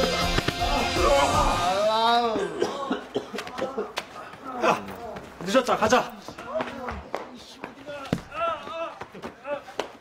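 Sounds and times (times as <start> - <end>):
person coughing: 2.3 - 4.0.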